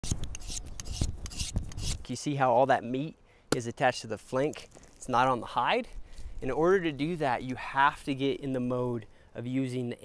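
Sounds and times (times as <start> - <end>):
knife scraping hide: 0.0 - 2.1.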